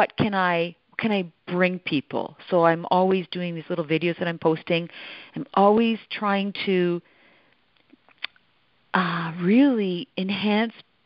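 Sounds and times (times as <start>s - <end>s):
faint intake of breath: 4.9s - 5.4s
mouth ticks: 7.8s - 8.4s.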